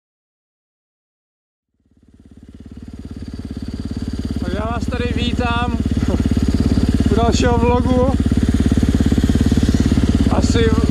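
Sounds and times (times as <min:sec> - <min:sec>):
motorcycle engine idling: 0:01.7 - 0:10.9.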